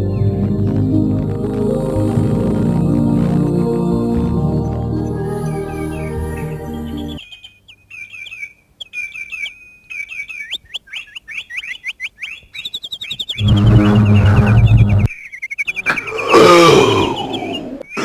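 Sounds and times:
loud low rumble: 0:00.0 - 0:05.8, 0:13.4 - 0:15.1
birds chirping: 0:00.0 - 0:18.0
giant roaring: 0:16.1 - 0:17.5.

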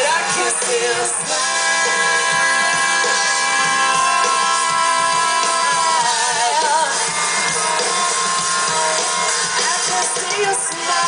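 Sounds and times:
drum beat: 0:00.0 - 0:11.0
live rock band playing: 0:00.0 - 0:11.0.

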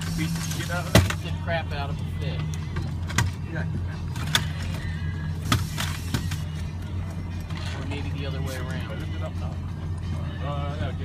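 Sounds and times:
boat engine droning: 0:00.0 - 0:11.0.

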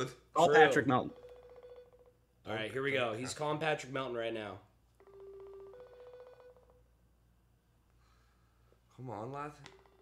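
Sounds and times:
pulsing phone call tone: 0:05.0 - 0:06.8.

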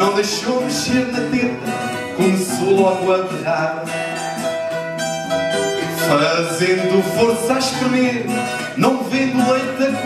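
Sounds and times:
acoustic guitar: 0:00.0 - 0:10.0
small plucked string instrument: 0:00.0 - 0:10.0.

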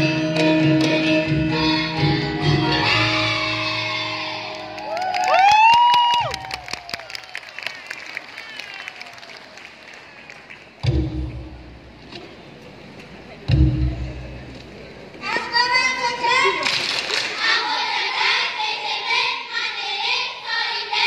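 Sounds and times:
audience clapping: 0:04.6 - 0:10.9, 0:16.6 - 0:17.5
deep thumps: 0:10.8 - 0:12.0, 0:13.5 - 0:14.6.

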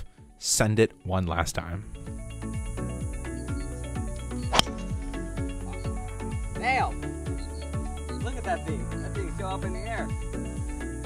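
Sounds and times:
golf driver hitting ball: 0:04.5 - 0:04.9.

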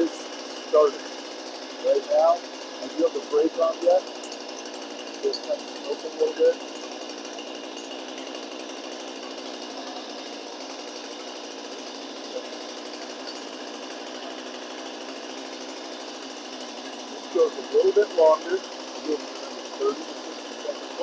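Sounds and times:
chainsaw engine running: 0:00.0 - 0:21.0.

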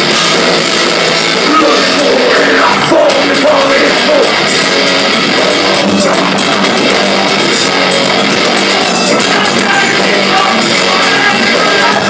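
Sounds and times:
bass guitar: 0:00.0 - 0:12.0
distorted electric guitars: 0:00.0 - 0:12.0
drum kit: 0:00.0 - 0:12.0.

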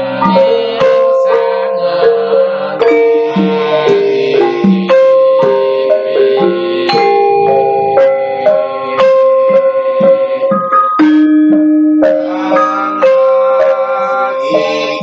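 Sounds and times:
gamelan ensemble playing: 0:00.0 - 0:15.0.

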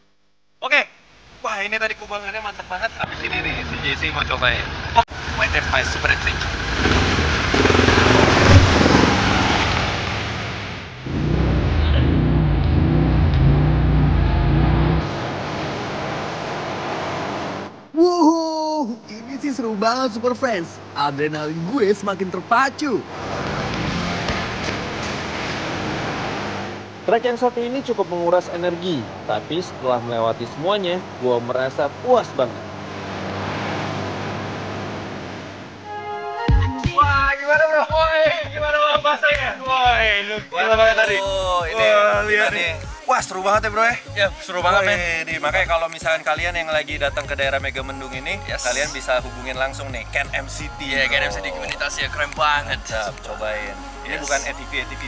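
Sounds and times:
atv engine revving: 0:05.2 - 0:15.2, 0:50.8 - 0:53.2.

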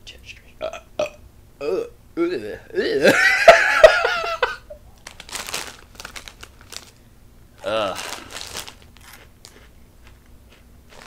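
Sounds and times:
plastic bag crinkling: 0:05.0 - 0:07.0, 0:07.6 - 0:10.2.

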